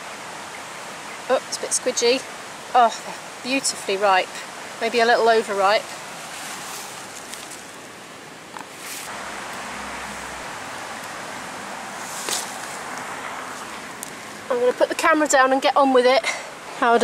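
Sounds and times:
wind hiss: 0.0 - 16.9
leaves rustling: 0.0 - 17.0
berries picked by hand: 2.7 - 15.8.

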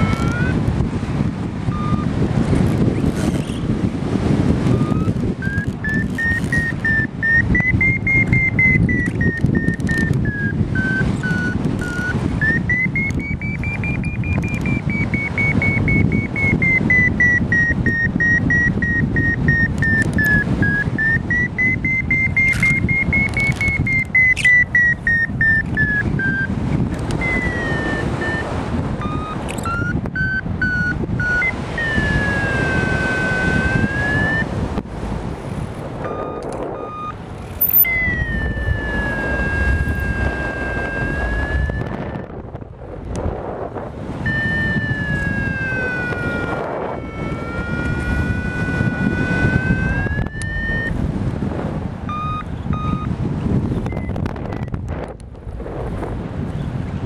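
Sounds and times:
variometer tone and beeps: 0.0 - 0.8, 1.7 - 3.5, 4.5 - 34.6, 36.0 - 42.4, 44.2 - 51.1, 52.0 - 55.2
wind rushing past microphone: 0.0 - 57.0.

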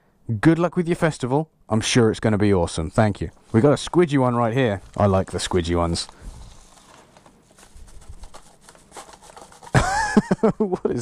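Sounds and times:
paper rustling: 3.3 - 10.4
paper tearing: 4.8 - 9.8.

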